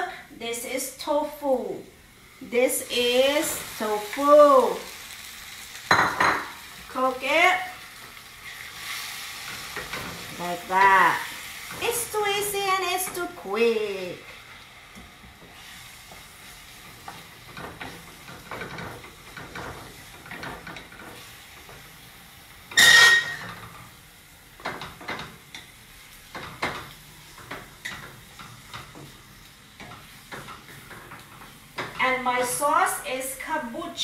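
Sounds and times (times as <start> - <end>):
faint frying sizzle: 0.0 - 34.0
spatula scraping a skillet: 8.3 - 10.8, 22.6 - 24.0.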